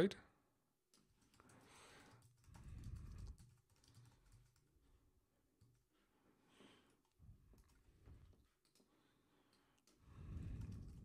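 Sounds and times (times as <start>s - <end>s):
quiet keyboard typing: 0.9s - 5.9s, 6.9s - 11.0s.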